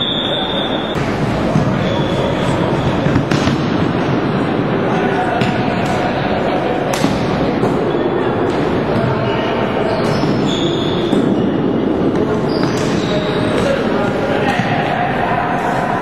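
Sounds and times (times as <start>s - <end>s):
mixed voices of players and spectators: 0.0s - 16.0s.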